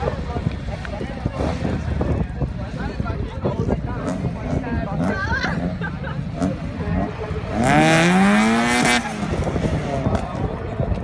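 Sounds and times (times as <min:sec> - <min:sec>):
voices chattering: 0:00.0 - 0:11.0
racing car engine revving: 0:04.0 - 0:10.4.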